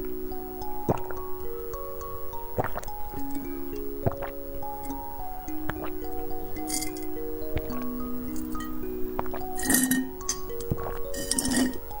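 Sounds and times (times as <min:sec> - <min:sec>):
chiming background music: 0:00.0 - 0:12.0
slurping through a straw: 0:00.8 - 0:01.3, 0:02.4 - 0:05.0, 0:05.6 - 0:12.0.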